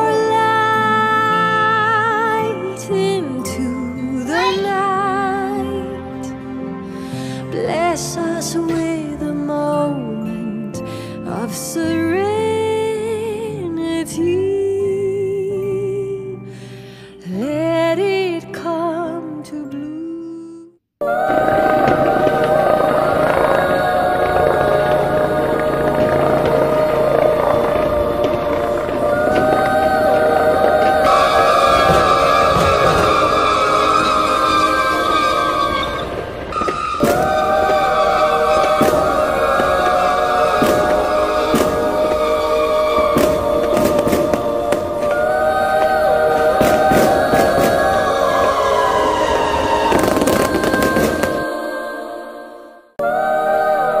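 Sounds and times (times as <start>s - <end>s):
music of long held tones: 21.0s - 54.0s
fireworks crackling: 21.1s - 51.6s.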